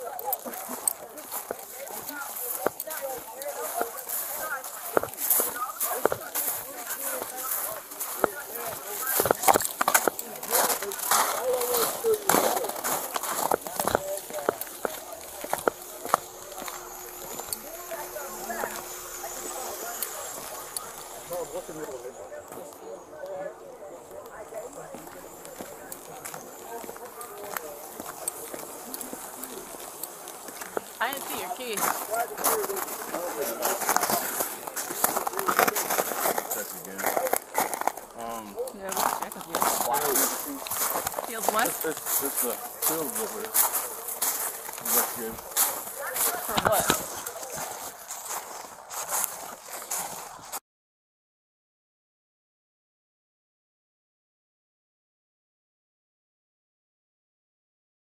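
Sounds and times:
camera rustling against clothing: 0.0 - 22.7, 24.6 - 50.6
indistinct voices: 0.0 - 50.2
footsteps crunching through snow: 0.0 - 50.6.

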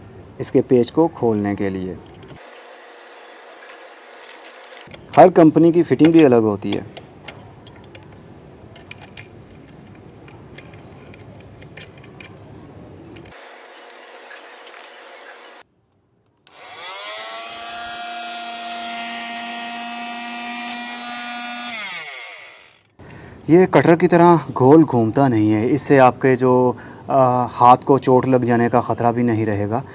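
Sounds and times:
multi-tool motor whine: 2.4 - 4.9, 13.3 - 15.6, 16.4 - 22.9.

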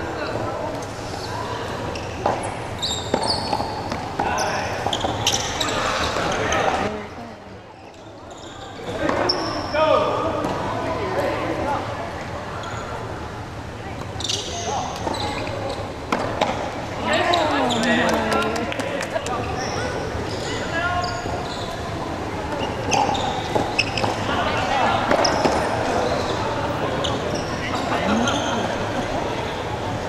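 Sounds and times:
sneakers squeaking on floor: 1.1 - 6.9, 7.8 - 9.8, 14.0 - 18.1, 19.4 - 29.1
players calling out: 17.0 - 20.0.

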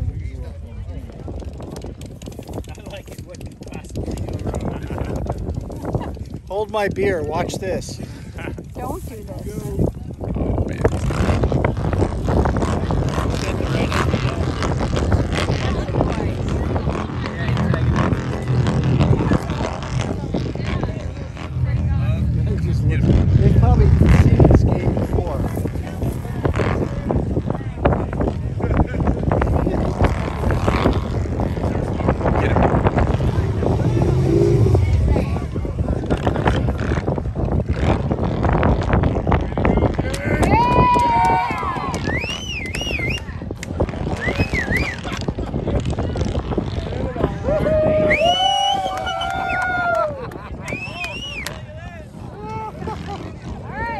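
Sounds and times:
crowd chatter: 0.0 - 53.9
motorcycle engines running: 0.0 - 53.9
onlookers talking: 0.0 - 53.9.

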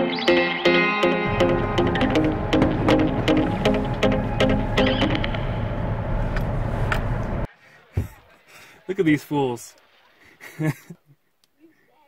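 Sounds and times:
background music with steady beat: 0.0 - 5.7.

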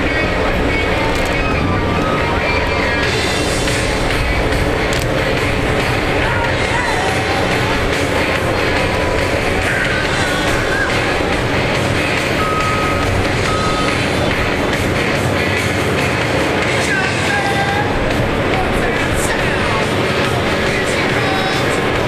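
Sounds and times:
music playing: 0.0 - 22.0
truck and loader engines running: 0.0 - 22.0
short beeps: 12.4 - 14.2.

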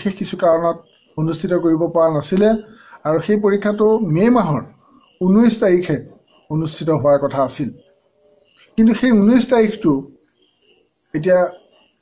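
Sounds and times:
man speaking: 0.0 - 7.8, 8.8 - 10.1, 11.1 - 11.7
crickets chirring: 0.0 - 12.0.

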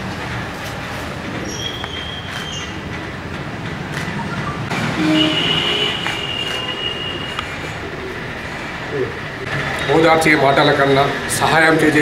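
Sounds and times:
train rumbling on rails: 0.0 - 12.0
high wheel squeals: 1.4 - 2.8.

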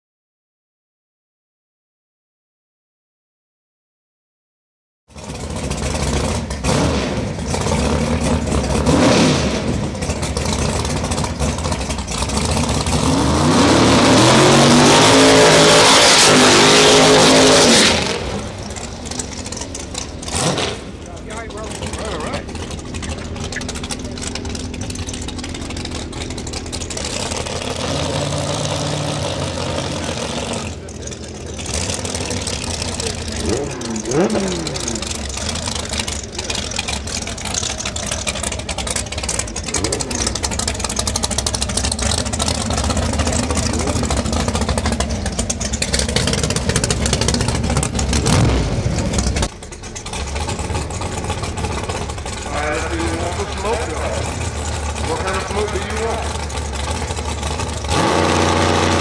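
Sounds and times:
race car engine revving: 5.2 - 59.0
people talking: 21.0 - 24.6, 30.0 - 31.8, 52.4 - 54.4, 55.0 - 56.4.

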